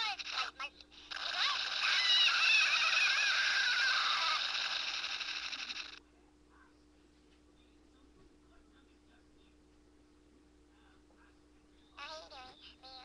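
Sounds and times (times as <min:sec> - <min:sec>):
high wavering voice-like sound: 0:01.2 - 0:04.6.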